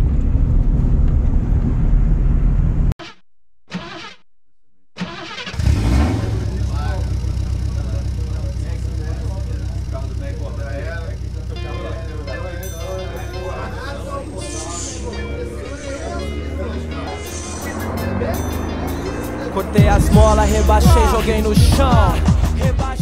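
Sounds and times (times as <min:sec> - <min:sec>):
car engine idling: 0:05.0 - 0:23.0
steady low drone: 0:06.2 - 0:23.0
music with singing: 0:11.5 - 0:23.0.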